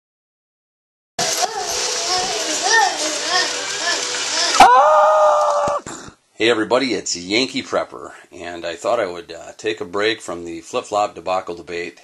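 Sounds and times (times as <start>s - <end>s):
children's voices: 1.2s - 4.8s.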